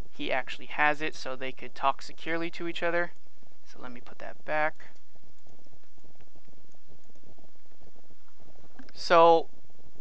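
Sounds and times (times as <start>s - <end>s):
low crackly rumble: 0.0s - 10.0s.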